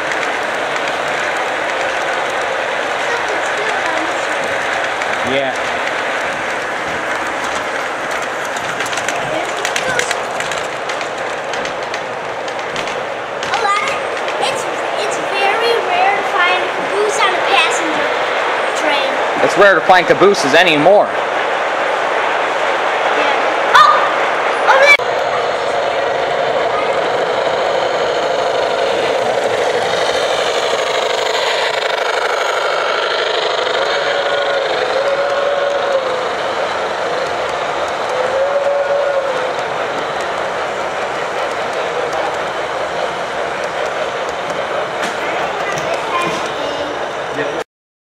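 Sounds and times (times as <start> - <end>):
model trains running on track: 0.0 - 47.6
people talking: 2.9 - 5.7, 9.0 - 10.5, 13.4 - 21.2, 23.1 - 27.6, 45.0 - 47.6.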